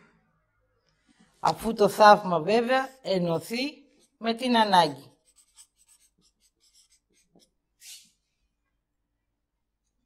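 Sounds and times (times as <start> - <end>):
felt-tip marker scratching on paper: 2.5 - 3.4, 4.0 - 8.0.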